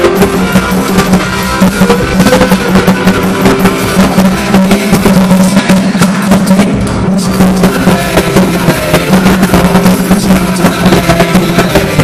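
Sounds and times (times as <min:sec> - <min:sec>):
steady low held note: 0:00.0 - 0:11.8
drums: 0:00.0 - 0:12.0
live rock band playing loud: 0:00.0 - 0:12.0.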